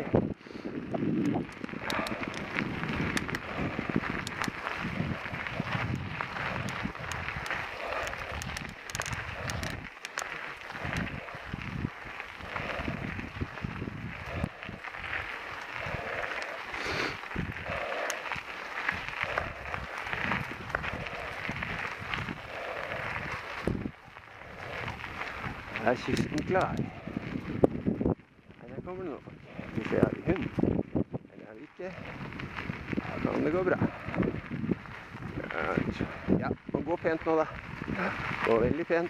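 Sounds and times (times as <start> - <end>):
bicycle tyres on gravel: 0.0 - 39.0
bike clicks and rattles: 0.0 - 39.0.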